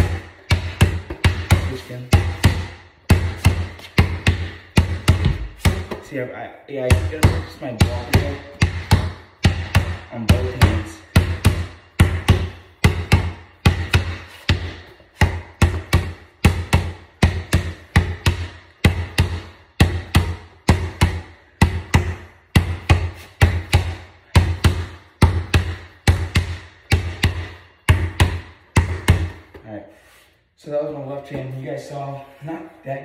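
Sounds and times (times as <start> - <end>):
basketball bouncing on concrete: 0.0 - 29.8.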